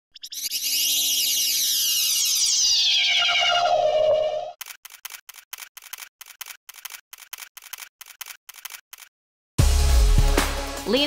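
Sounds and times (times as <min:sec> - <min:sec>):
electronic sweep falling in pitch: 0:00.2 - 0:04.6
quick clicks: 0:04.6 - 0:09.1.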